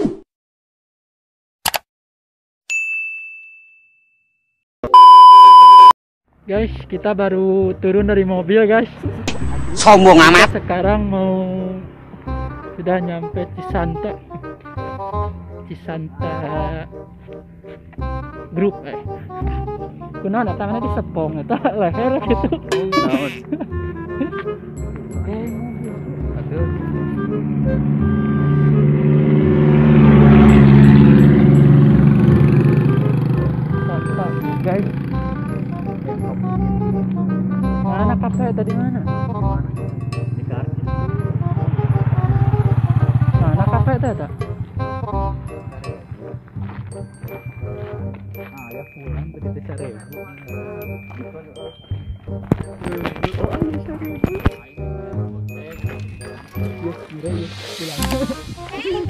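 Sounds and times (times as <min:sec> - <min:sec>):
loud steady test-tone beep: 0:04.8 - 0:06.0
vehicles driving past: 0:07.5 - 0:49.2, 0:55.2 - 0:59.0.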